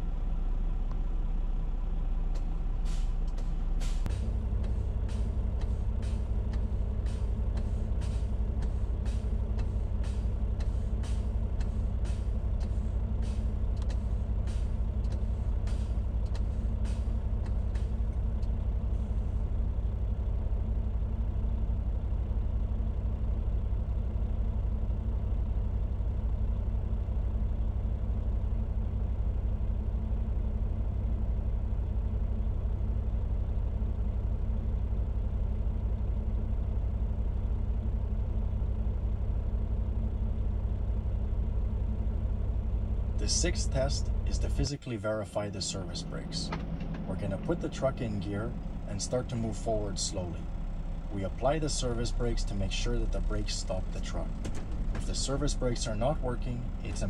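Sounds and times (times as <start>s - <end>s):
diesel truck engine idling: 0.0s - 57.0s
air brake bursts: 2.8s - 18.0s.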